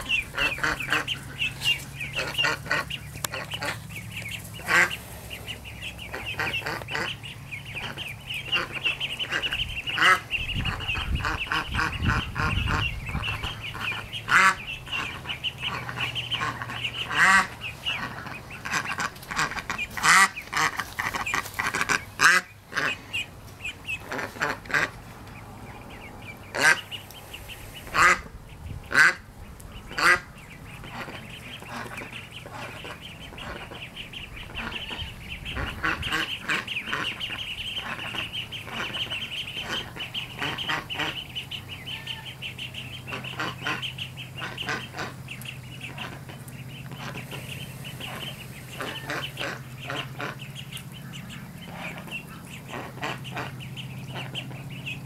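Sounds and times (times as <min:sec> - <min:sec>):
duck quacks: 0:00.0 - 0:25.1, 0:25.9 - 0:55.0
ducklings peeping: 0:00.0 - 0:55.0.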